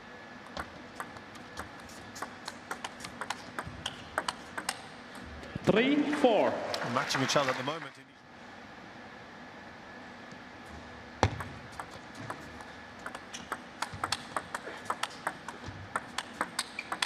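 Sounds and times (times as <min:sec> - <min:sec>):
table tennis ball clicking: 0:00.5 - 0:04.9, 0:11.2 - 0:17.0.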